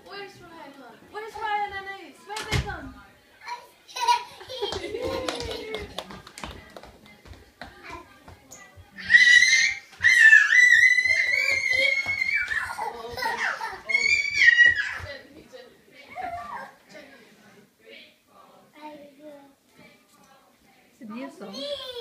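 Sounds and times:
toddler singing: 0:07.6 - 0:15.1, 0:21.5 - 0:22.0
small children babbling: 0:09.0 - 0:15.0, 0:21.6 - 0:22.0.

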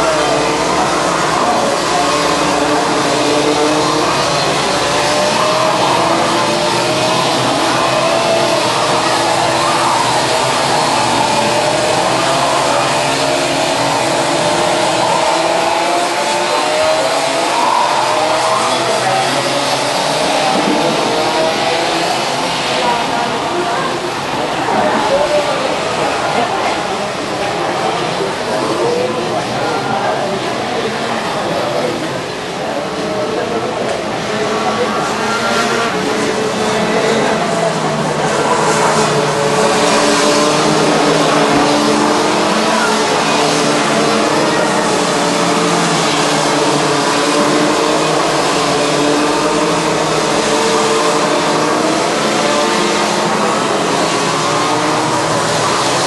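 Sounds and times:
kart engines whining: 0:00.0 - 0:56.0.

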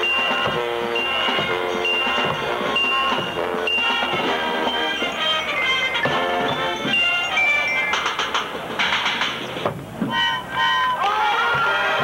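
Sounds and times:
horn chords: 0:00.0 - 0:08.2, 0:10.1 - 0:12.0
marching band percussion hits: 0:00.0 - 0:12.0.

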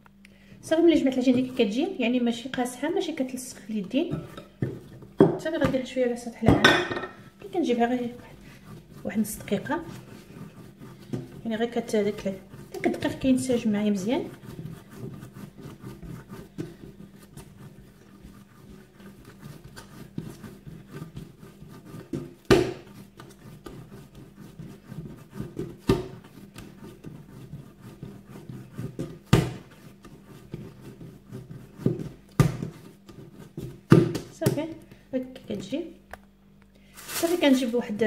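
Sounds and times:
hands kneading dough: 0:00.2 - 0:06.6, 0:07.2 - 0:38.0
dough thumping on counter: 0:04.2 - 0:07.2, 0:22.0 - 0:23.8, 0:25.4 - 0:26.8, 0:28.9 - 0:29.8, 0:31.8 - 0:34.8.

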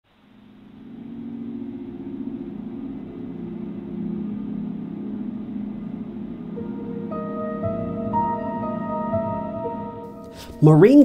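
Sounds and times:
dark rumbling drone: 0:00.1 - 0:10.4.

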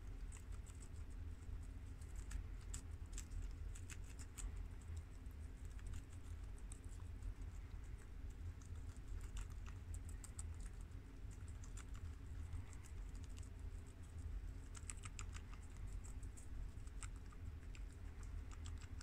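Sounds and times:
guinea pigs crunching lettuce: 0:00.0 - 0:19.0
low steady hum: 0:00.0 - 0:19.0.

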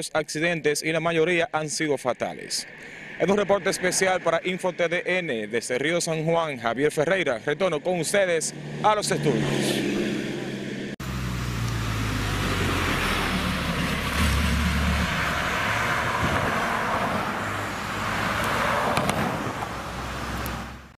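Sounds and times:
vehicle passing close by: 0:08.4 - 0:20.9
low engine hum: 0:08.4 - 0:21.0.

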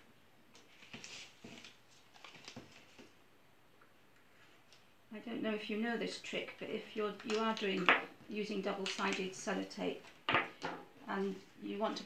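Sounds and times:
paper rustling: 0:00.6 - 0:03.2, 0:08.7 - 0:09.4.

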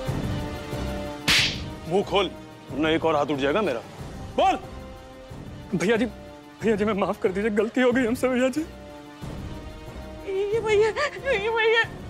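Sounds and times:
background music held notes: 0:00.0 - 0:12.0
slap across the face: 0:01.2 - 0:01.7.

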